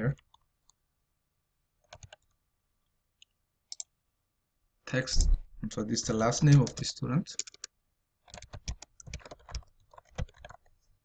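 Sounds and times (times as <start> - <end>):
keyboard and mouse clicks: 1.8 - 2.4, 3.2 - 3.9, 5.1 - 5.4, 6.4 - 7.7, 8.3 - 10.7.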